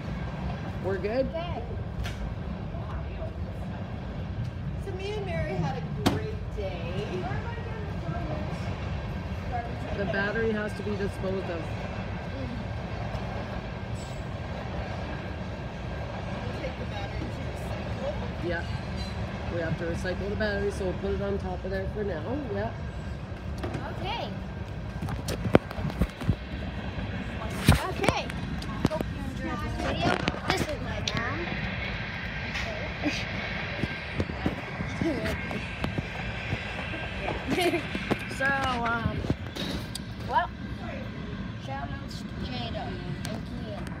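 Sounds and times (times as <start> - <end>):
steady low rumble: 0.0 - 44.0.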